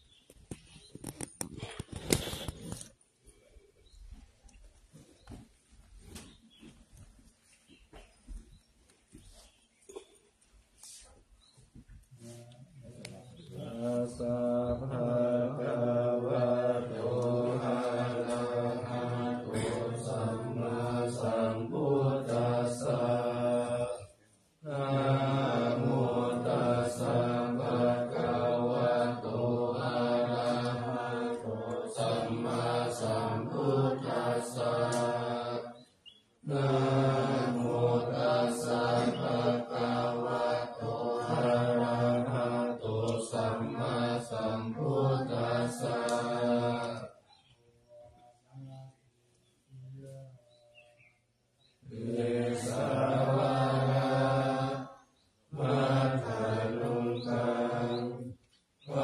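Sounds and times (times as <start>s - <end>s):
men chanting in monotone: 13.4s - 35.8s, 36.4s - 47.2s, 51.8s - 59.0s.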